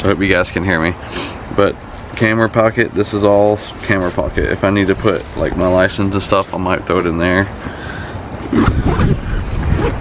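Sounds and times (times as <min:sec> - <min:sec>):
wind buffeting microphone: 0:03.9 - 0:10.0
fabric backpack handled: 0:08.4 - 0:10.0
zipper: 0:08.4 - 0:10.0.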